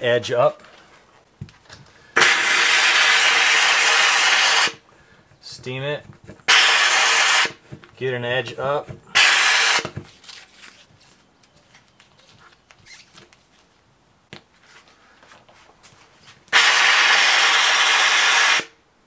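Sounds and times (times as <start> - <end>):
steam cleaner hissing: 2.2 - 4.8, 6.5 - 7.6, 9.2 - 9.8, 16.5 - 18.7.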